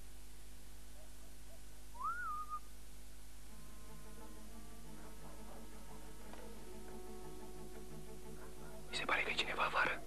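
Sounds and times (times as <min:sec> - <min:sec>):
soft background music tones: 0:02.5 - 0:10.0
person whispering: 0:08.9 - 0:10.0.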